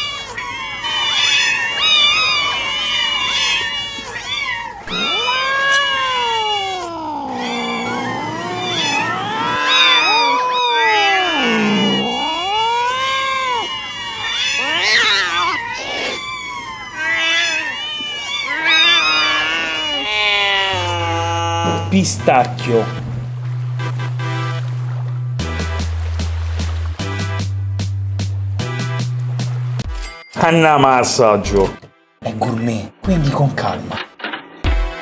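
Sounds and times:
voice-like sound sliding in pitch: 0:07.0 - 0:10.4, 0:11.1 - 0:12.6.

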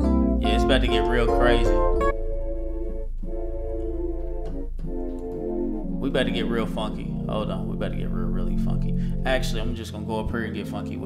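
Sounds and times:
low bass note: 0:00.0 - 0:10.4
organ-like keyboard chords: 0:00.0 - 0:11.0.

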